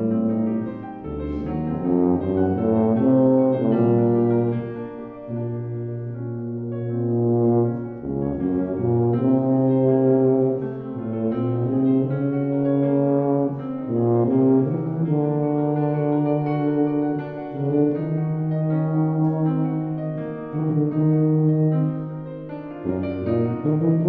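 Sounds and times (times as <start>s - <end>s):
tuba playing slow low melody: 0.0s - 24.0s.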